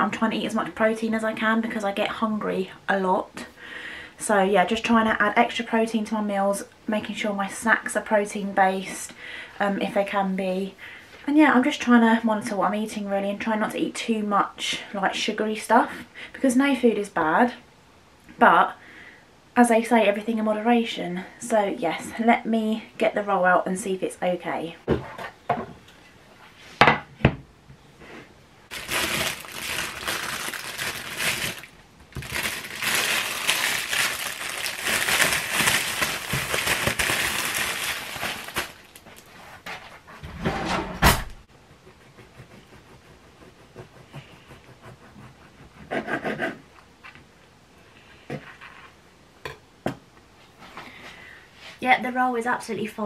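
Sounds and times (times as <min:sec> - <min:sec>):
paper bag rustling: 0:28.7 - 0:39.4.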